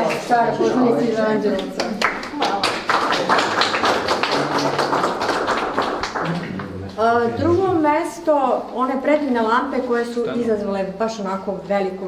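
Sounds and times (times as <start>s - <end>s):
hand clapping: 1.5s - 7.0s.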